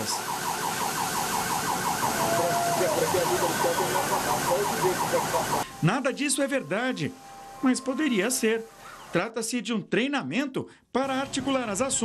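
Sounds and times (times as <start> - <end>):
siren yelping: 0.0 - 9.2
steady hiss: 2.9 - 9.2.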